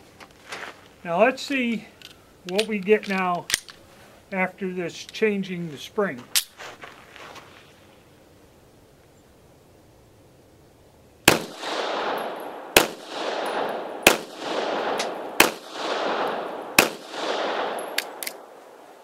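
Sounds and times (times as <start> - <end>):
metallic clicks of misfire: 1.5 - 4.4
pistol shots with echo: 11.2 - 18.5.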